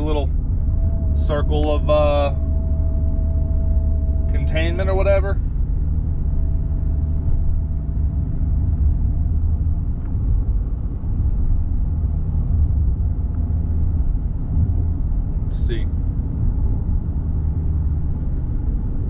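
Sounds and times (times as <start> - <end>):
car engine low rumble: 0.0 - 19.0
road noise: 0.0 - 19.0.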